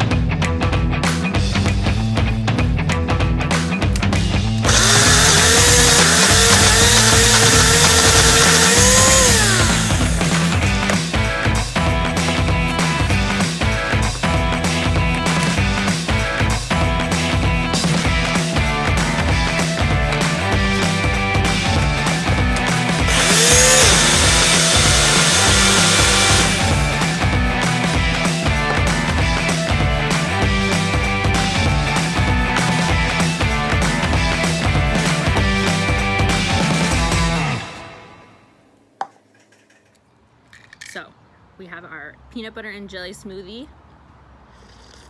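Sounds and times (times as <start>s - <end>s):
rock music: 0.0s - 38.4s
blender motor humming: 4.7s - 10.9s, 22.6s - 27.2s.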